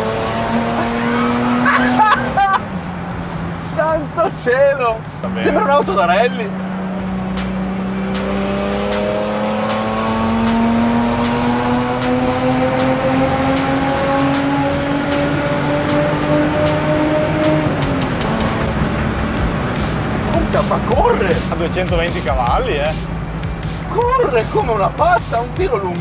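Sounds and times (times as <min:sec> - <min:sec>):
car engine accelerating: 0:00.0 - 0:26.0.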